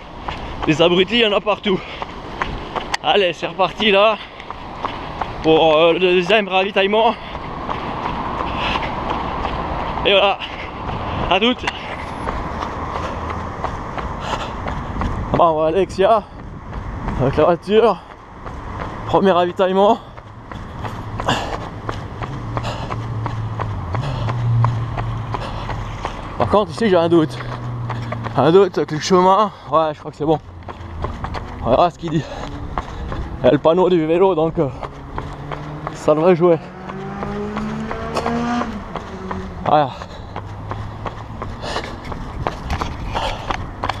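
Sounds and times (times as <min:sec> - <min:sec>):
wind rumble: 0:00.0 - 0:19.2, 0:29.9 - 0:44.0
footsteps on asphalt: 0:00.0 - 0:44.0
person breathing: 0:07.1 - 0:07.5, 0:08.4 - 0:09.0, 0:14.1 - 0:14.7, 0:21.2 - 0:26.3, 0:32.2 - 0:33.3, 0:39.9 - 0:42.2, 0:43.0 - 0:43.7.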